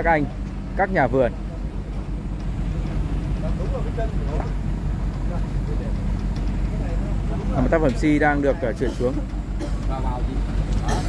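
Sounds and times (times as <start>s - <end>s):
truck engine humming under load: 0.0s - 11.0s.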